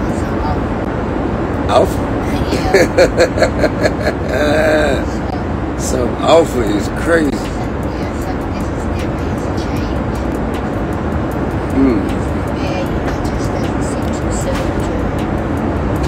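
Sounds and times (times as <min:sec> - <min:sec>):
short vocal sound: 0:11.7 - 0:12.1.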